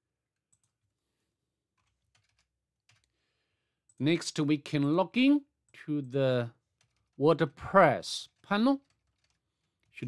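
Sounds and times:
faint keyboard clicks: 0:00.4 - 0:00.9, 0:08.2 - 0:10.0.

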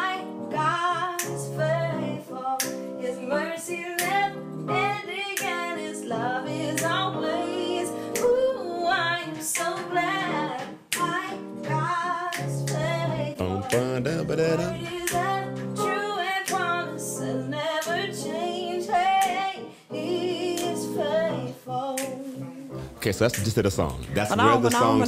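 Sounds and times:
woman singing slow melody: 0:00.0 - 0:13.9, 0:14.6 - 0:22.7, 0:24.4 - 0:25.0
guitar chords: 0:11.0 - 0:17.0, 0:23.8 - 0:25.0.

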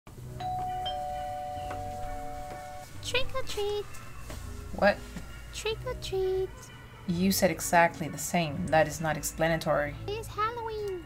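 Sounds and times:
two-tone doorbell chime: 0:00.4 - 0:02.9.

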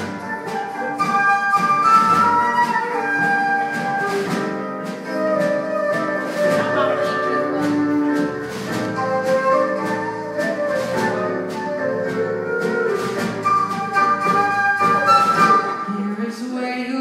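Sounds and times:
flute melody: 0:00.0 - 0:16.2
live band playing: 0:00.0 - 0:17.0.

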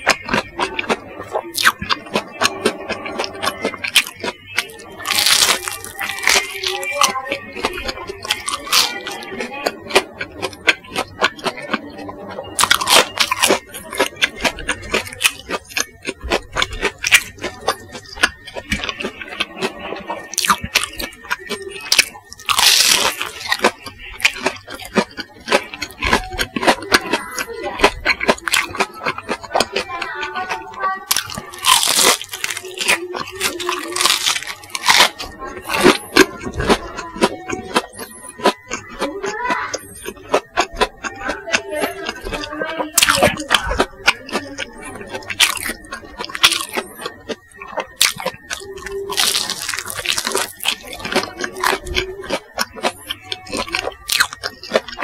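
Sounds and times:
chewing crispy food crunches: 0:00.0 - 0:55.0
wet mouth sounds: 0:00.0 - 0:55.0.

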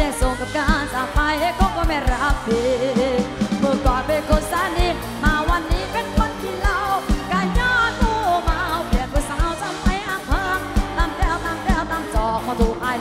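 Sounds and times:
live band playing: 0:00.0 - 0:13.0.

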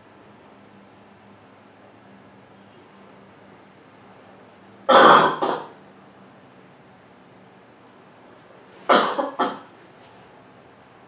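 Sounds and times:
man clearing his throat: 0:04.9 - 0:05.7, 0:08.9 - 0:09.7.

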